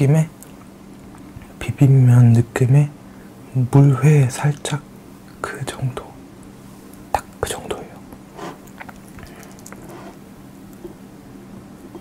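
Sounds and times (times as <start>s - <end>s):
chewing mouth sounds: 8.5s - 10.2s.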